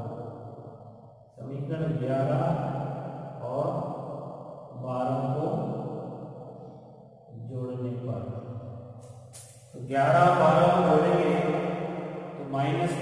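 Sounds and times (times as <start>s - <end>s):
man chanting: 1.4s - 2.8s, 3.4s - 3.9s, 4.7s - 5.9s, 7.3s - 8.3s, 9.8s - 11.8s, 12.4s - 13.0s.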